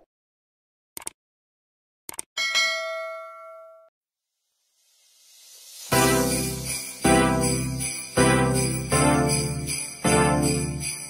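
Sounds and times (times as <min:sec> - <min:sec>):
quick clicks: 0:01.0 - 0:01.2, 0:02.1 - 0:02.3
bright bell ding: 0:02.4 - 0:03.9.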